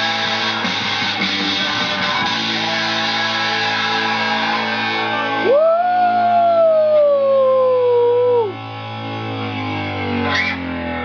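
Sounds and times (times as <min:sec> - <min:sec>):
electric guitar rock music: 0:00.0 - 0:11.0
low amplifier hum: 0:02.6 - 0:11.0.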